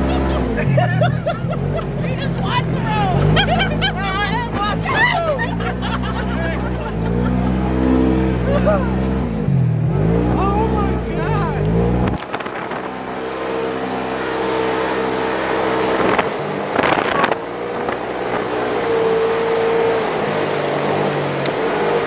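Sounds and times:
people talking and laughing: 0.0 - 9.3
off-road vehicle engine revving: 0.0 - 22.0.

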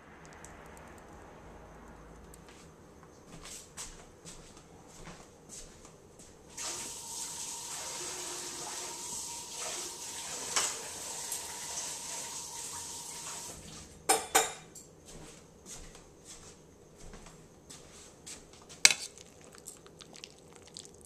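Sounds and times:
water running from tap: 6.5 - 13.8, 18.9 - 21.0.

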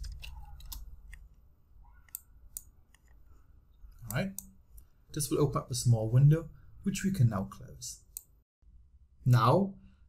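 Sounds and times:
computer mouse buttons clicking: 0.0 - 1.3, 2.0 - 3.2.

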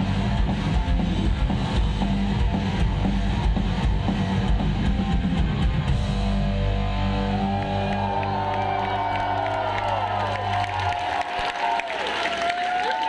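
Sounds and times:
rock band chord ringing out: 0.0 - 9.6
crowd cheering and whistling: 6.6 - 13.0.

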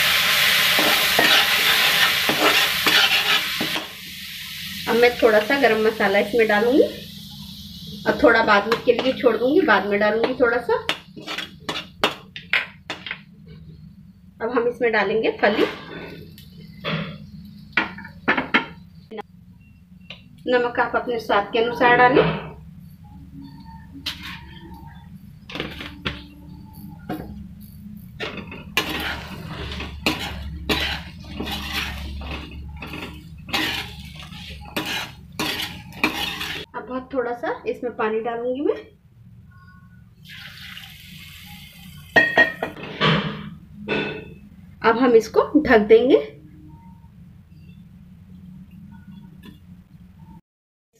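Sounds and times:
spatula scraping a metal pan: 0.7 - 3.9, 11.1 - 12.2, 24.0 - 24.7, 28.2 - 36.7
low hum: 15.3 - 37.1.

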